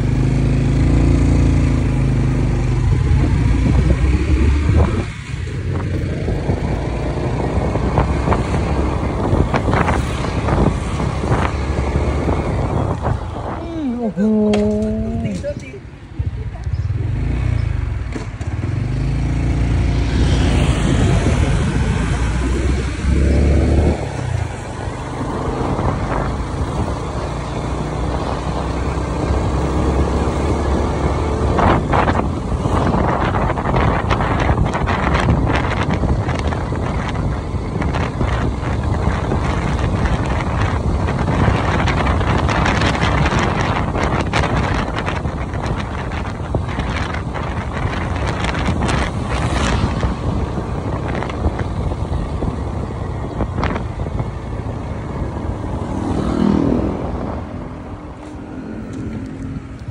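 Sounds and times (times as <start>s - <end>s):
road noise: 0.0s - 59.9s
wind buffeting microphone: 0.0s - 59.9s.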